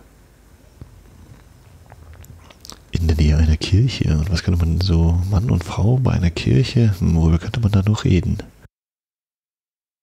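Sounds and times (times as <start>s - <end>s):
low steady hum: 0.0s - 8.7s
man speaking: 2.9s - 8.6s.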